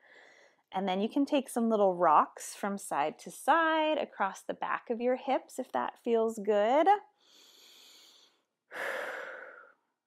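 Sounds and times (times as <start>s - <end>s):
woman breathing and sighing: 7.2s - 9.9s.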